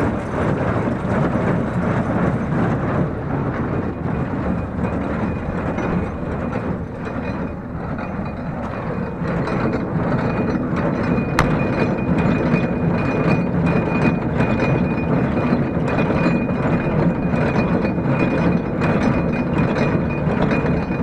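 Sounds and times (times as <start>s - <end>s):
sharp click: 11.4s - 11.8s.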